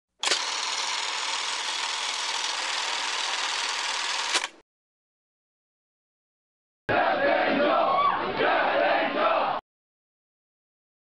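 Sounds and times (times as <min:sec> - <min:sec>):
click: 0:04.3 - 0:04.6.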